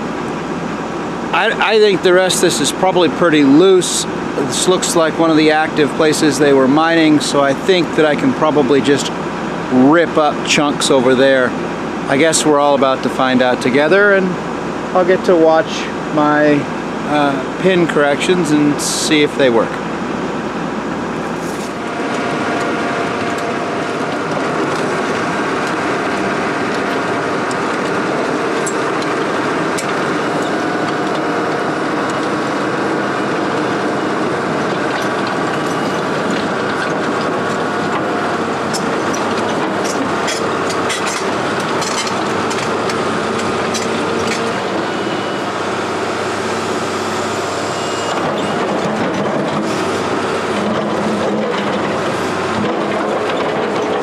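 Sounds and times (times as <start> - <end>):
excavator diesel engine running: 0.0 - 54.0
metallic clanks of steel tracks: 34.6 - 45.5.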